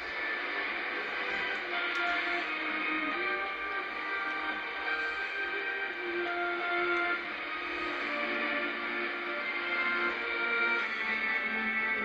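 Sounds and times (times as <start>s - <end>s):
steady radio hiss: 0.0s - 12.0s
thin radio music: 0.0s - 12.0s.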